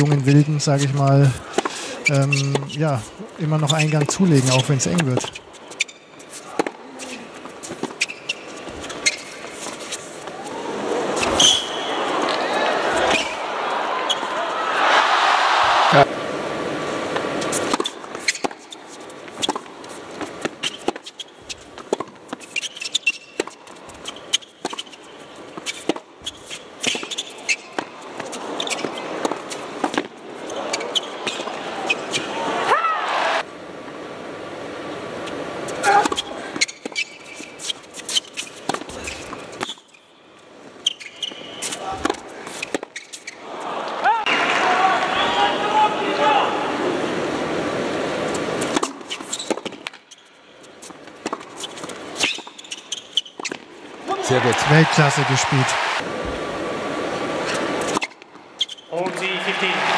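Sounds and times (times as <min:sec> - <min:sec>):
loud crowd noise: 0:10.2 - 0:17.7, 0:30.2 - 0:33.5, 0:43.4 - 0:48.2, 0:54.0 - 0:57.8, 0:58.9 - 0:59.9.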